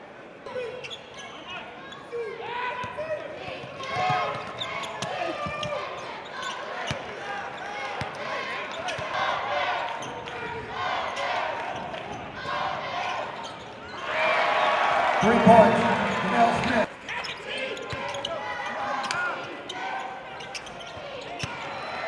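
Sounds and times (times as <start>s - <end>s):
voices of players and crowd: 0.0s - 22.0s.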